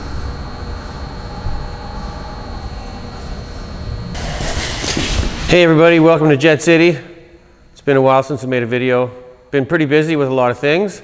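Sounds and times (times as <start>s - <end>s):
jet engine running: 0.0s - 7.2s.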